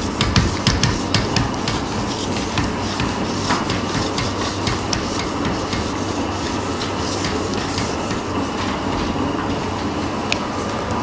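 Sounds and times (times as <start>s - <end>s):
eraser scraping whiteboard: 0.0s - 10.0s
room hum: 0.0s - 11.0s.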